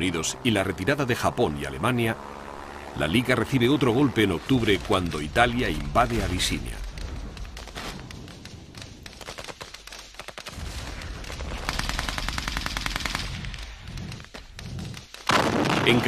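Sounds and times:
machine-gun burst: 4.4s - 16.0s
single gunshots: 15.3s - 16.0s.

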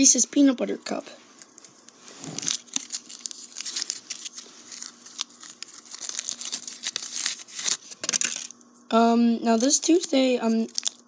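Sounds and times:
candy wrapper crinkling: 1.3s - 8.8s, 9.6s - 11.0s.

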